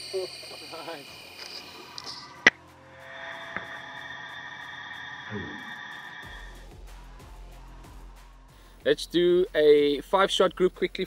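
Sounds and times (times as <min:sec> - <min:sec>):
steady high tones: 0:00.0 - 0:06.6
background music: 0:00.0 - 0:11.0.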